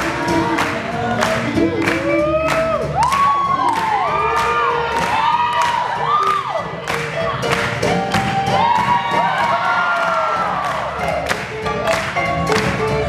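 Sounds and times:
audience cheering and whooping: 0.0s - 11.4s
swing jazz band playing: 0.0s - 13.0s.

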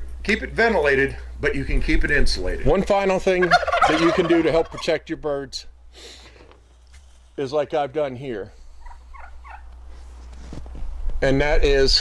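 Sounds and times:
low steady rumble: 0.0s - 5.9s
turkeys and chickens chirping: 2.8s - 5.1s, 8.7s - 9.8s.

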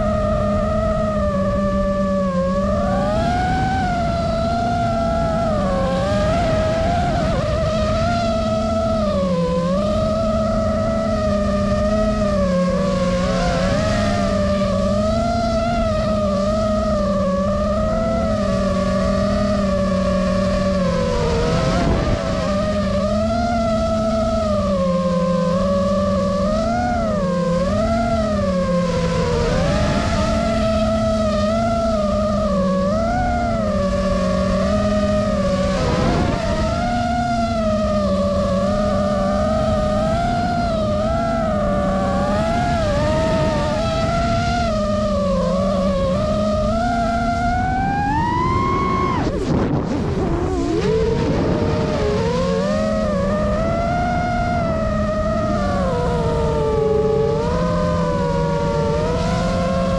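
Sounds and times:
drone motors whining: 0.0s - 59.9s.

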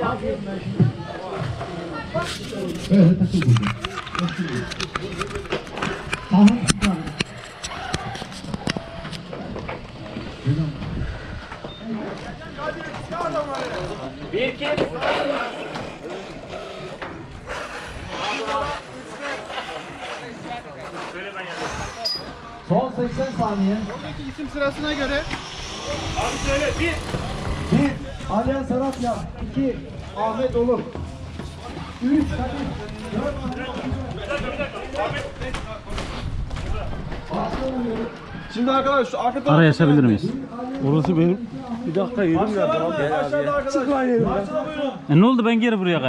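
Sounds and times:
people talking indistinctly: 0.0s - 46.0s.

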